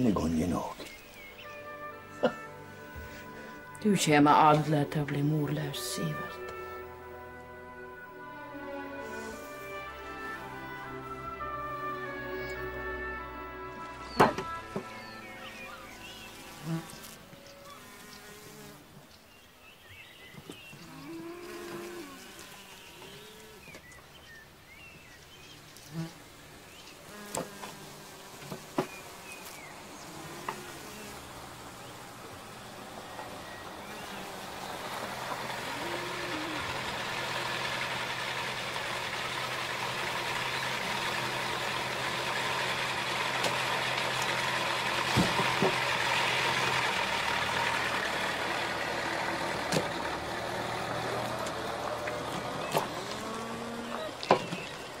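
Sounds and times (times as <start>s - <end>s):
car engine and tyre noise: 28.4s - 55.0s.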